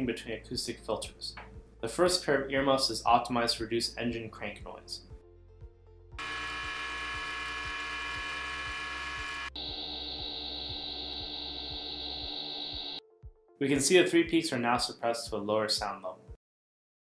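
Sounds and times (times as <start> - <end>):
faint background music with beat: 0.0 - 6.2, 13.0 - 16.4
engine crank whirring: 6.2 - 13.0.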